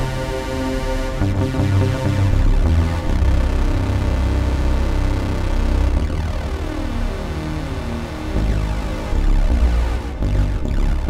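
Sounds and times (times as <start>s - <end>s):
experimental electronic music: 0.0s - 11.0s
pulsing low bass: 0.0s - 11.0s.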